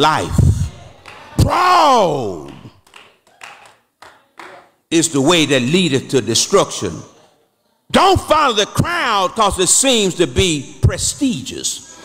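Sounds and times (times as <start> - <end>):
congregation murmuring: 0.0 - 2.8
hand claps: 1.0 - 1.6, 2.2 - 4.7.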